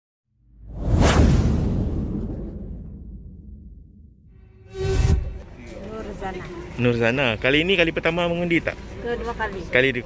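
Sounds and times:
whoosh: 0:00.5 - 0:05.5
deep rumble: 0:00.5 - 0:05.6.

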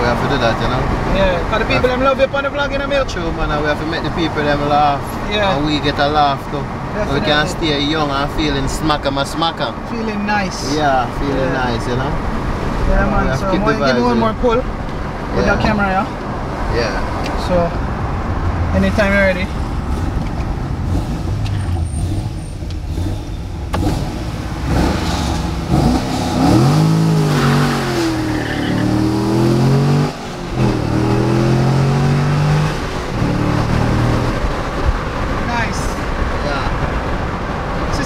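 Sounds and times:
car engine revving at full throttle: 0:11.5 - 0:38.0.

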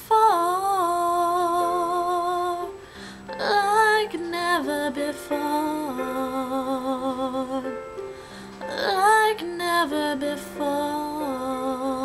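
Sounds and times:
woman singing with vibrato: 0:00.0 - 0:07.9, 0:08.6 - 0:12.0.

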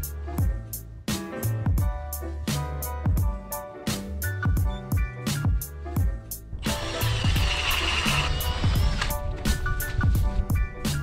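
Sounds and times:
background music with steady beat: 0:00.0 - 0:11.0
ice auger drill motor whine: 0:06.6 - 0:09.1
grinding hiss of ice cuttings: 0:06.6 - 0:09.2.

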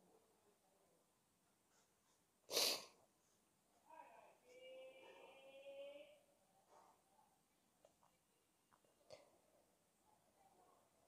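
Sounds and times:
person sneezing: 0:02.5 - 0:03.0
speech: 0:03.8 - 0:07.4.

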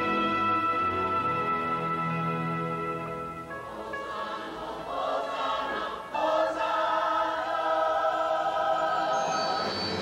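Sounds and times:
choir singing held notes: 0:03.5 - 0:10.0.

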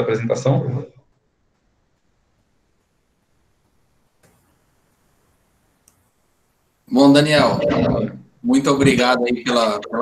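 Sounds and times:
man's voice: 0:06.9 - 0:10.0.

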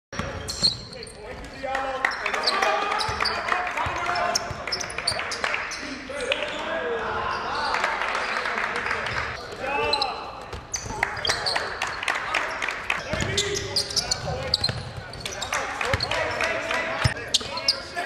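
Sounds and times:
voices in gymnasium: 0:00.2 - 0:18.0.

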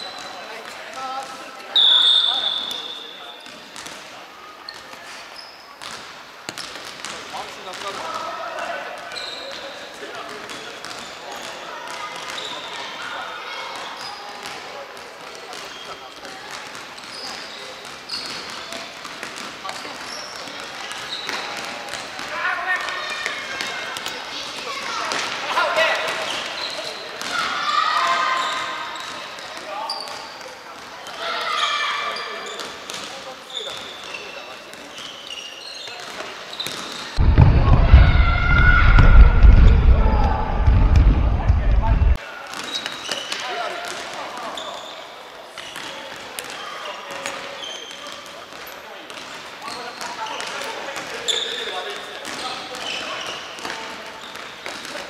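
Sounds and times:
loud low rumbling: 0:37.2 - 0:42.2
players shouting: 0:37.2 - 0:42.2.

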